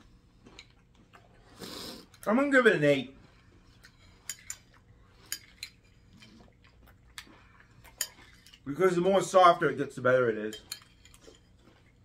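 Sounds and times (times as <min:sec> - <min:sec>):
spoons clinking against bowls: 0:03.9 - 0:06.0, 0:07.8 - 0:08.7, 0:10.4 - 0:11.6.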